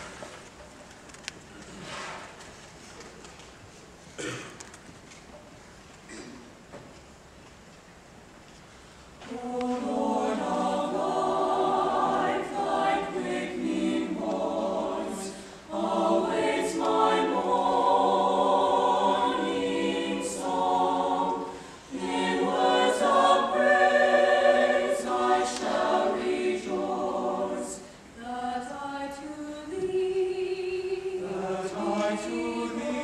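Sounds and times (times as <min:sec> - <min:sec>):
choir singing in harmony: 0:09.2 - 0:33.0.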